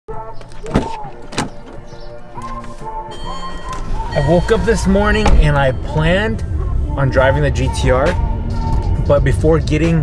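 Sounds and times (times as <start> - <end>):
background music: 0.1 - 10.0
car door latch clicks: 0.4 - 2.8.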